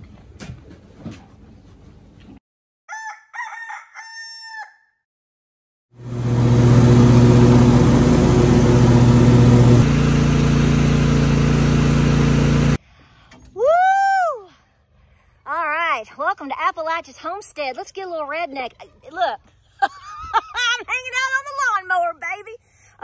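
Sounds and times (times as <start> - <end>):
rooster crowing: 2.9 - 5.0
loud noisy drone: 6.0 - 12.8.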